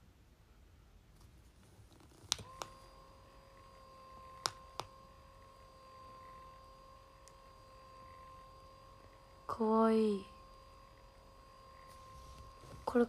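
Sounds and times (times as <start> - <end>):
massage cushion motor whine: 0.6 - 13.0.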